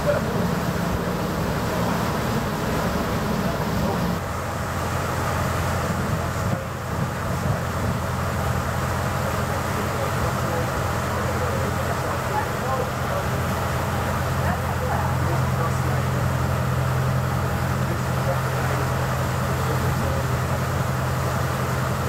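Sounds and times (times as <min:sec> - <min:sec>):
ferry engines droning: 0:00.0 - 0:22.0
water noise: 0:00.0 - 0:22.0
wind: 0:00.0 - 0:22.0.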